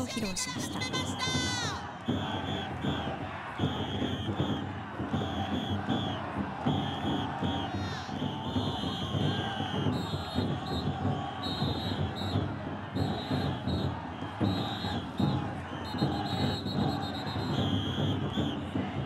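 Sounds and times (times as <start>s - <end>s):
crowd shouting and cheering: 0.0s - 19.0s
drums beating: 0.0s - 19.0s.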